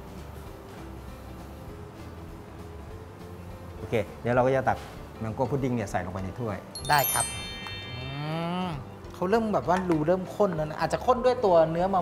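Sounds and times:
bright shimmering chime: 0:06.8 - 0:09.0.

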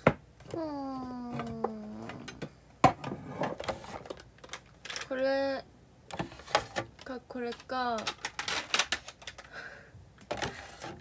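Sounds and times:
plastic cases clicking: 0:06.1 - 0:09.5.

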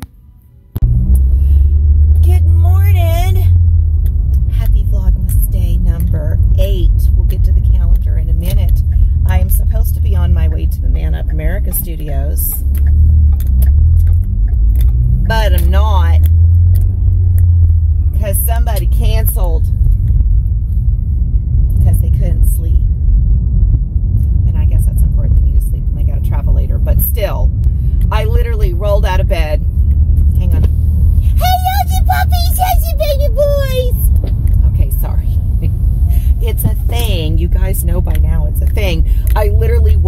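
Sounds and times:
car cabin road noise: 0:00.0 - 0:40.0
woman talking: 0:02.2 - 0:03.6, 0:04.4 - 0:12.6, 0:15.3 - 0:16.3, 0:18.2 - 0:19.7, 0:21.8 - 0:22.9, 0:24.4 - 0:27.5, 0:28.1 - 0:29.6, 0:30.3 - 0:40.0.

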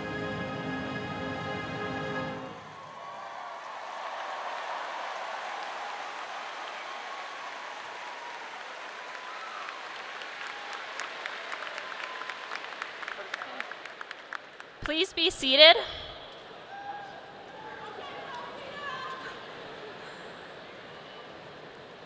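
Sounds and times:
large audience applauding: 0:02.6 - 0:15.8.

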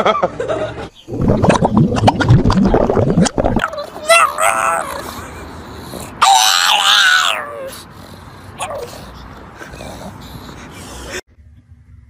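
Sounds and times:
dog yowling cry: 0:03.6 - 0:11.2.

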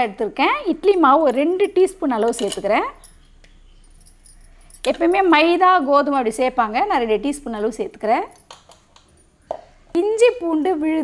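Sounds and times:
woman speaking: 0:00.0 - 0:03.1, 0:04.8 - 0:08.4, 0:10.0 - 0:11.0.

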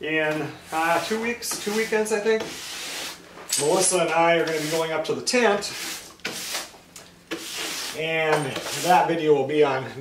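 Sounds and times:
hand tool sweeping across wood: 0:00.6 - 0:05.0, 0:05.6 - 0:09.1.

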